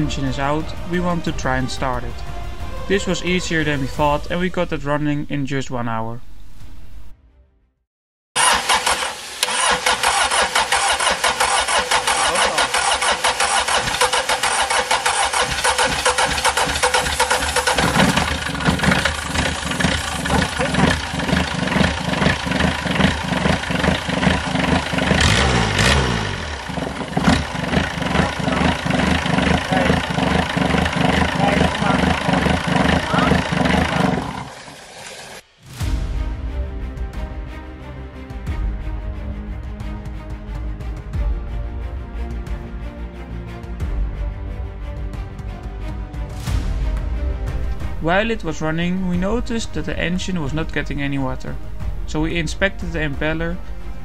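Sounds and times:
diesel engine running with rapid knock: 0:08.4 - 0:35.4.

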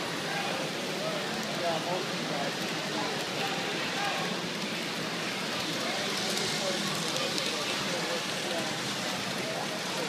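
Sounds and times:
chatter of many voices: 0:00.0 - 0:10.0.

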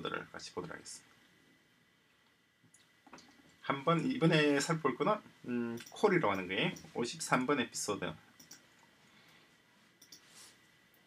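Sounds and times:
computer clicks: 0:05.7 - 0:06.9, 0:08.4 - 0:08.9, 0:10.0 - 0:10.3.

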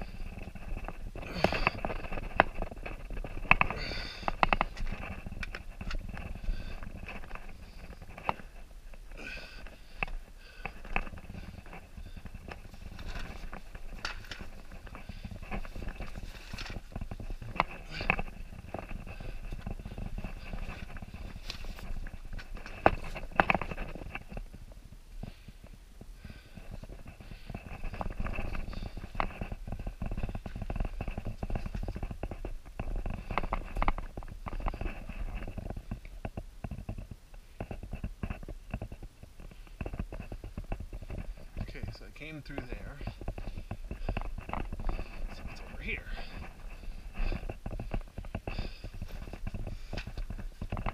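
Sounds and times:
scraping on rough rock: 0:00.0 - 0:25.4, 0:26.2 - 0:50.9
person breathing: 0:01.2 - 0:02.1, 0:03.7 - 0:04.4, 0:09.1 - 0:12.4, 0:25.2 - 0:27.9, 0:43.0 - 0:50.2.

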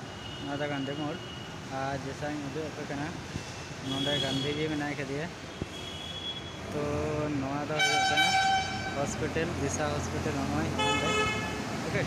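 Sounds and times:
vehicle horn blasts: 0:07.8 - 0:09.0, 0:10.8 - 0:11.6.

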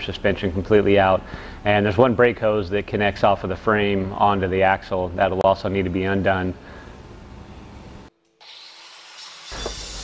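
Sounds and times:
faint workshop noise: 0:00.0 - 0:10.0
angle grinder hissing on metal: 0:08.4 - 0:10.0.

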